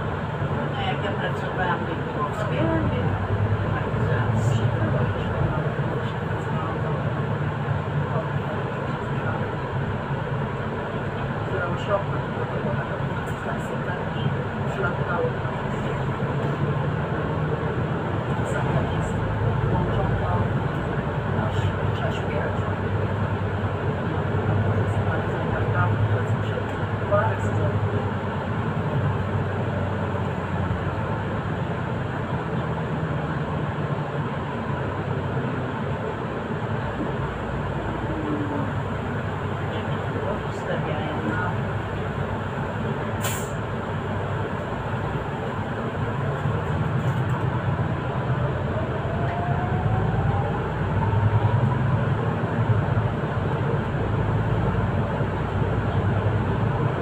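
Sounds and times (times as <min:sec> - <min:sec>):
bus engine drone: 0:00.0 - 0:57.0
road noise: 0:00.0 - 0:57.0.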